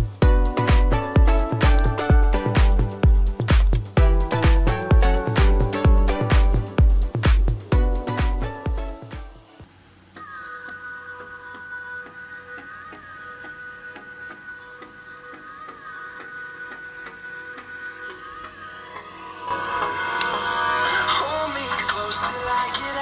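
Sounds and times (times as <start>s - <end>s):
music from phone speaker: 0.0s - 23.0s.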